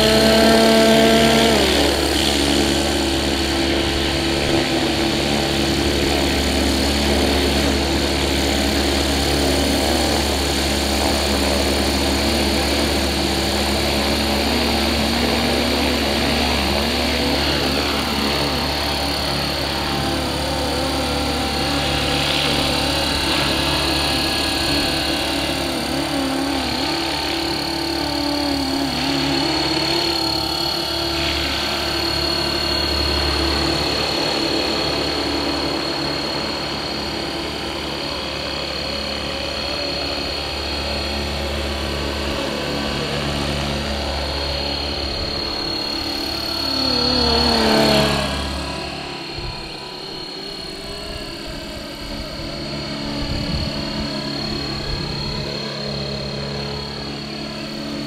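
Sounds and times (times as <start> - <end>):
model helicopter rotors whining: 0.0 - 58.0.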